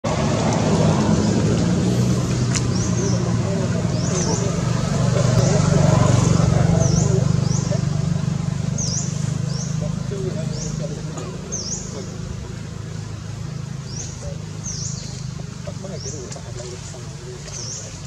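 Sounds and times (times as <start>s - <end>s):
engine running low hum: 0.0s - 18.0s.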